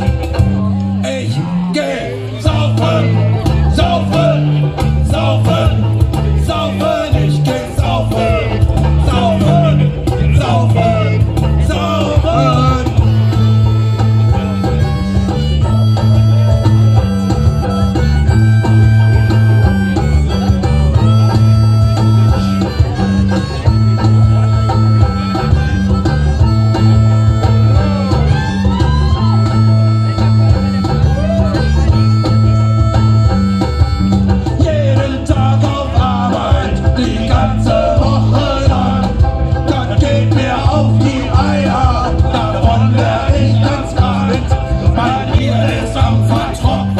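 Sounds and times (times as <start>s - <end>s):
live rock band playing: 0.0s - 46.9s
person singing: 1.4s - 14.8s, 34.4s - 46.9s.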